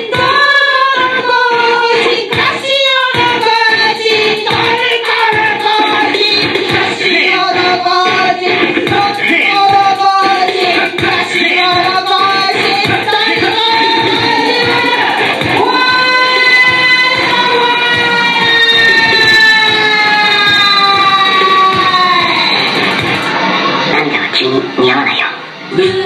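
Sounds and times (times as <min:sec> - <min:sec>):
electronic music on synthesizers: 0:00.0 - 0:26.0.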